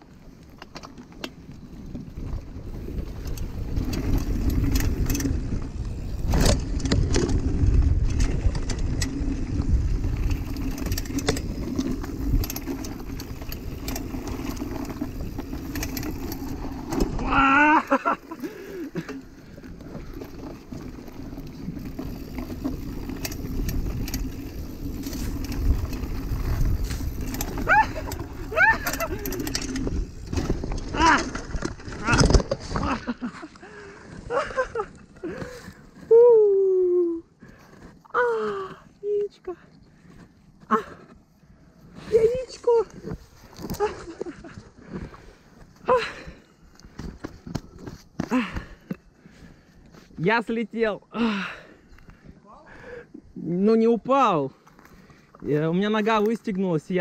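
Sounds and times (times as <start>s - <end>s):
bike rattling over bumps: 0.1s - 36.0s, 42.0s - 50.5s
tyres rumbling on dirt: 1.4s - 35.9s
person shouting: 17.2s - 18.0s, 27.7s - 29.2s.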